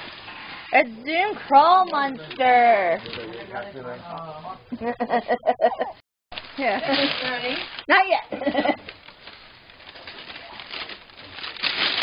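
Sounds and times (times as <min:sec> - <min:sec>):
wrapping paper rustling: 0:00.0 - 0:03.7, 0:06.4 - 0:12.0.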